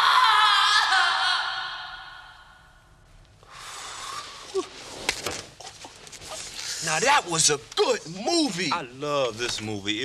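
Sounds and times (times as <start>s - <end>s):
screaming: 0.0s - 2.7s.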